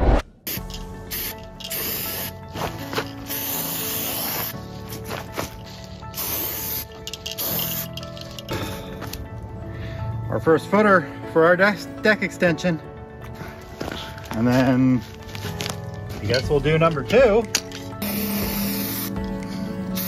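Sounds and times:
background music: 0.0s - 20.0s
aerosol paint can hissing: 0.5s - 8.8s, 17.8s - 20.0s.

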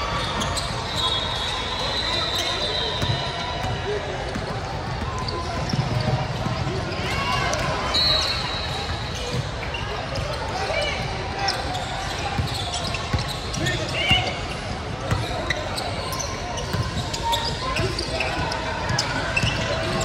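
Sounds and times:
voices of players and spectators: 0.0s - 20.0s.

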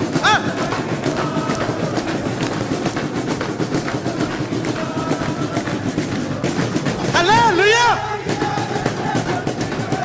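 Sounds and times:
hand clapping: 0.0s - 7.6s, 8.3s - 10.0s
drum beat: 0.0s - 10.0s
group singing a carol: 0.0s - 10.0s.

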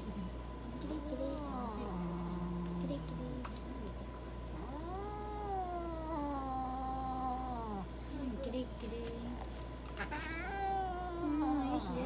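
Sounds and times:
cat yowling: 4.6s - 7.9s, 10.0s - 12.0s.

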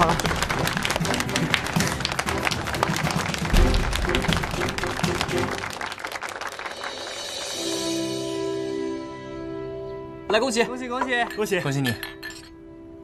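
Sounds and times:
people clapping: 0.0s - 7.9s
background music: 0.0s - 13.0s.

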